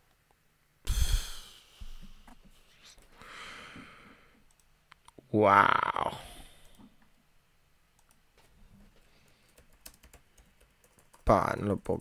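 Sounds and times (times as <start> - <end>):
computer keyboard typing: 8.0 - 8.2, 9.2 - 11.4.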